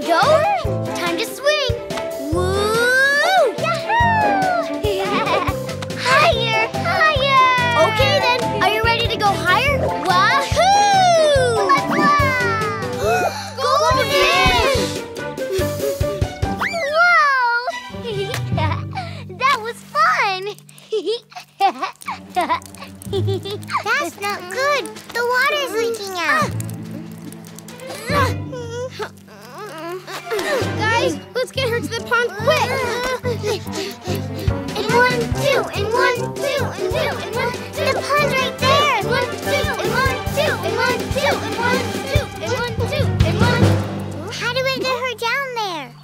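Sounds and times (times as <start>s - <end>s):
soft background music: 0.0s - 46.0s
high cartoon voices exclaiming: 2.3s - 14.9s, 16.6s - 17.7s, 34.7s - 45.9s
squeaky cartoon voices calling: 10.7s - 13.0s.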